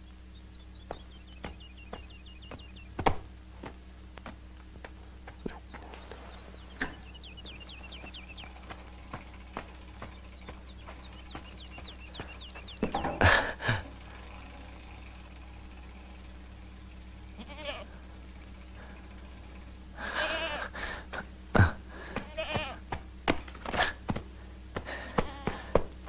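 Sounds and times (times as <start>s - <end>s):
goats bleating: 17.3s - 18.0s, 20.0s - 20.9s, 21.6s - 22.9s, 24.9s - 25.8s.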